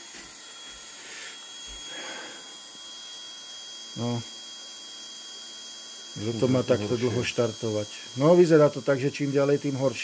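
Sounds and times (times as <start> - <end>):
thin high whine: 0.0 - 10.0
fuel pump whirring: 0.2 - 4.3.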